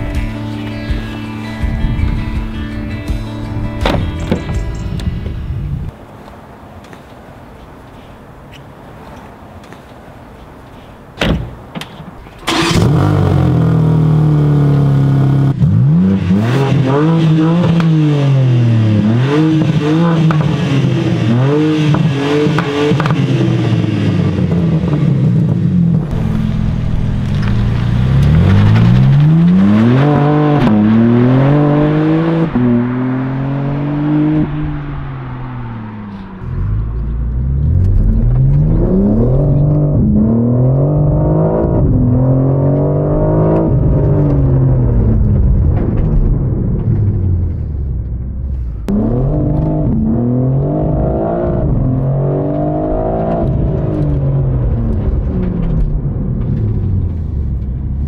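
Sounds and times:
car engine accelerating hard: 12.5 - 58.0.

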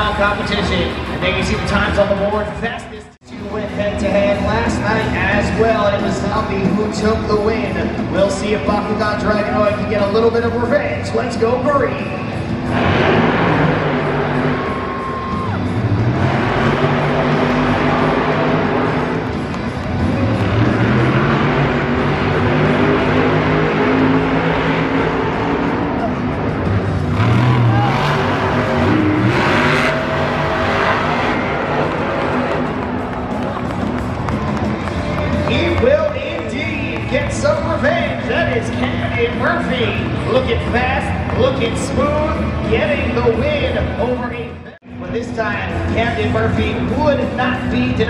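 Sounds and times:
truck engines revving: 0.0 - 48.0.

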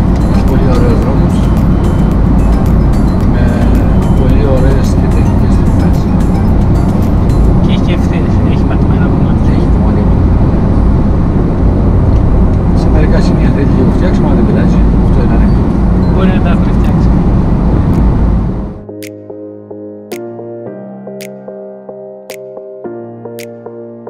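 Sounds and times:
car road and engine noise: 0.0 - 19.7
voices talking: 0.4 - 2.1, 3.0 - 6.6.

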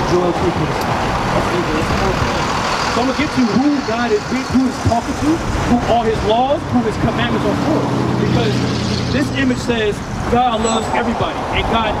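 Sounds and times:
pickup truck driving past: 0.9 - 11.5.

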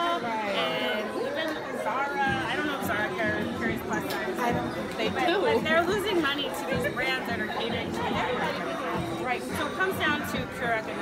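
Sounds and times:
background music: 0.0 - 11.0
crowd chatter: 0.0 - 11.0
woman talking: 0.0 - 11.0.

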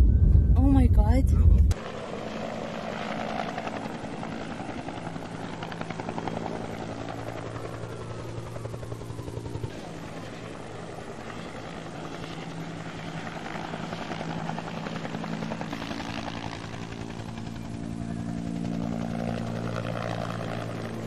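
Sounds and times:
helicopter rotor and engine: 0.0 - 21.0.

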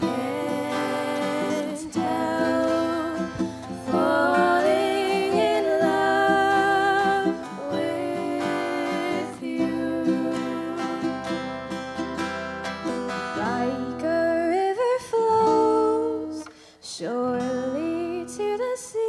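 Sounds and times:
ukulele and acoustic guitar: 0.0 - 19.0.

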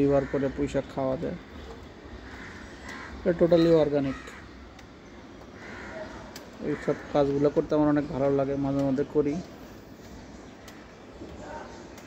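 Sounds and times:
crow cawing: 0.0 - 1.2, 2.0 - 4.8, 5.4 - 7.9.

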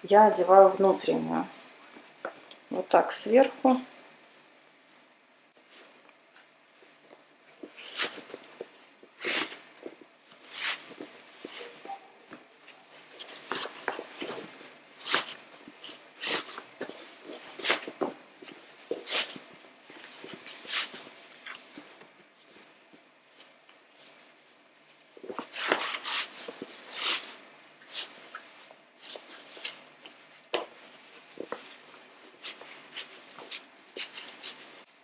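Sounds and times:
fabric rustling swishes: 6.8 - 24.4.

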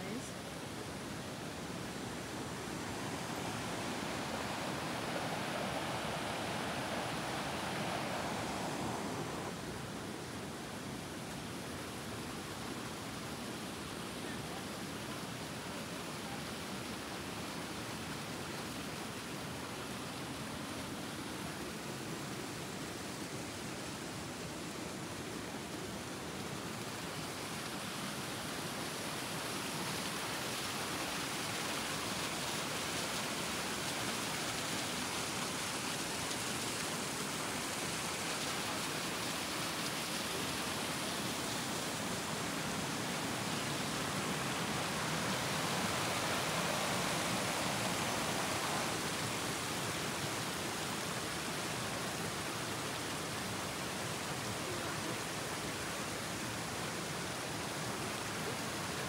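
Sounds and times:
stream water rushing: 0.0 - 59.0.

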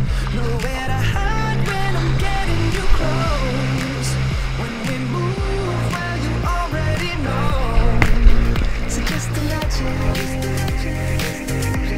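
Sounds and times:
person singing: 0.0 - 11.9
pop music with drum beat: 0.0 - 11.9.

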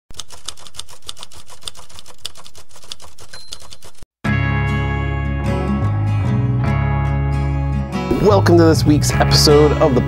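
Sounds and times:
typewriter key clatter: 0.1 - 4.0.

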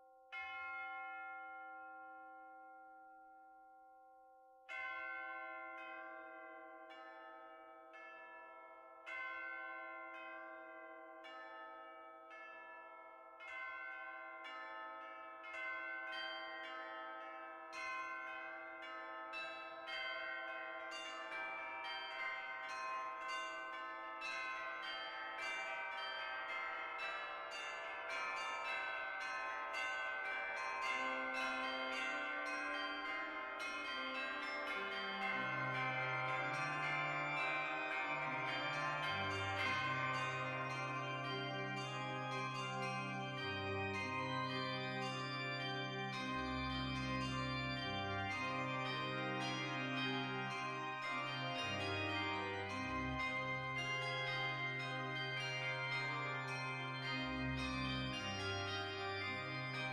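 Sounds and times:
bells ringing: 0.0 - 3.5, 4.7 - 59.9.

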